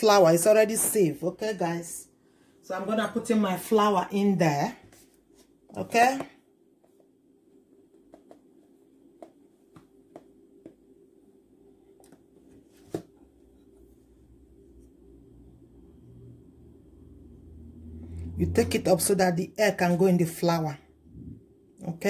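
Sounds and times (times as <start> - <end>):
low hum: 13.3 - 19.4, 20.8 - 21.8.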